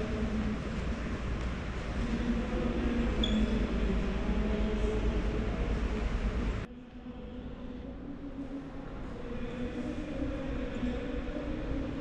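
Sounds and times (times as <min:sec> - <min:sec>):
electric fans droning: 0:00.0 - 0:12.0.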